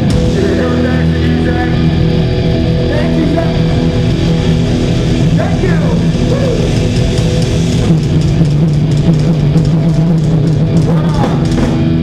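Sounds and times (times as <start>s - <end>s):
drum kit: 0.0s - 12.0s
electric guitar: 0.0s - 12.0s
held low note: 0.0s - 12.0s.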